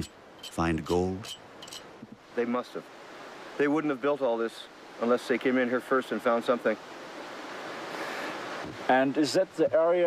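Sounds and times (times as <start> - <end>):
soft rushing outdoor noise: 0.0 - 10.0.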